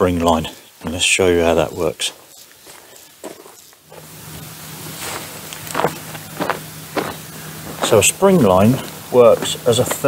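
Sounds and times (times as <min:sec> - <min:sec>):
footsteps on wood-chip path: 0:00.0 - 0:10.0
light hiss: 0:00.0 - 0:10.0
steady low hum: 0:00.0 - 0:10.0.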